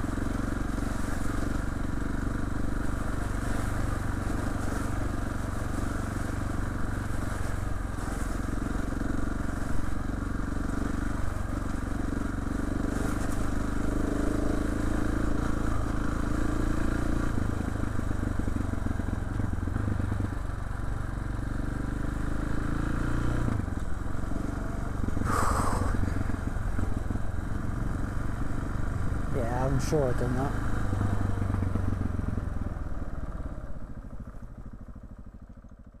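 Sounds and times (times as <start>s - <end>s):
motorcycle engine running: 0.0s - 36.0s.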